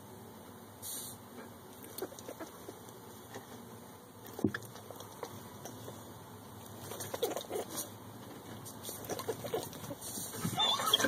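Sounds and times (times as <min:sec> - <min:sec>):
rustling of fur and hay: 0:05.3 - 0:11.0.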